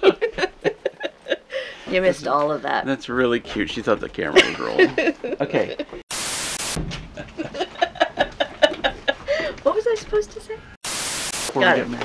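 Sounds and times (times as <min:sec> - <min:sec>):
woman talking: 0:01.8 - 0:02.9, 0:09.5 - 0:10.7
static hiss transition effect: 0:06.1 - 0:06.8, 0:10.8 - 0:11.6.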